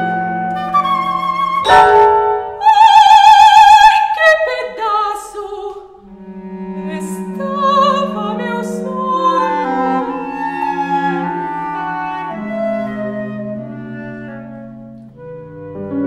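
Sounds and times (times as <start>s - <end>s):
low cello notes: 0.0s - 4.5s, 5.9s - 16.0s
clarinet: 0.0s - 5.0s, 5.9s - 16.0s
piano: 0.0s - 5.7s, 6.8s - 16.0s.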